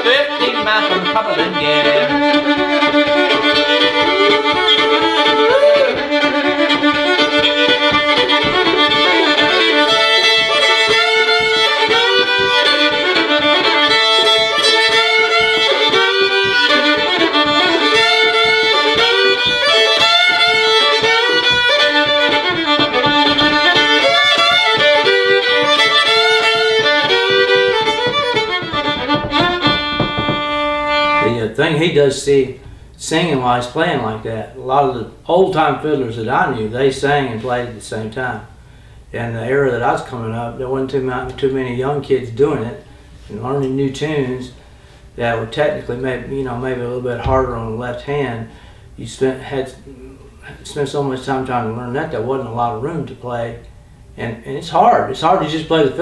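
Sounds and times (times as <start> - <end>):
two fiddles playing a tune: 0.0 - 34.3, 54.8 - 56.0.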